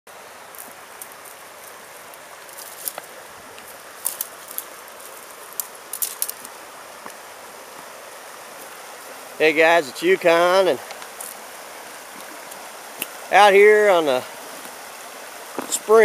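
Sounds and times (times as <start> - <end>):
shallow stream rushing: 0.1 - 16.0
footsteps on loose stones: 0.5 - 7.2.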